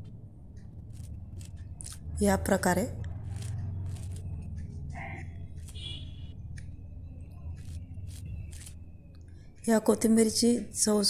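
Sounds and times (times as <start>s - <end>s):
scissors snipping herbs: 3.2s - 4.3s.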